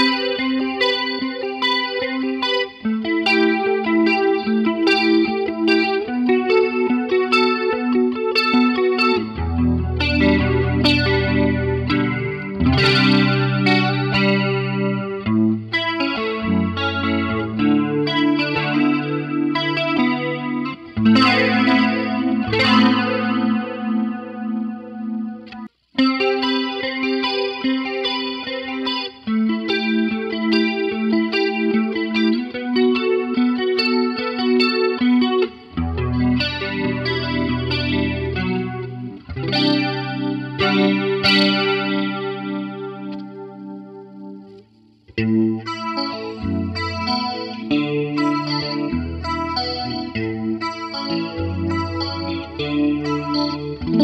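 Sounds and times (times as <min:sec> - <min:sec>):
electric guitar with chorus effect: 0:00.0 - 0:54.0.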